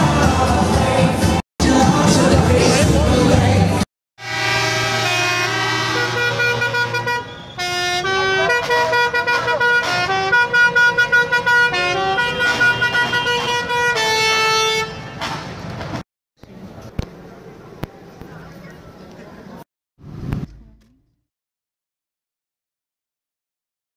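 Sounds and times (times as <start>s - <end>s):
rap music: 0.0s - 3.8s
musical vehicle horn tune: 4.2s - 15.4s.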